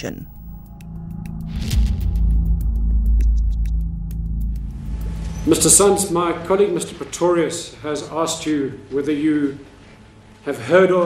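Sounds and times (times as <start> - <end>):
low droning rumble: 1.5 - 7.1.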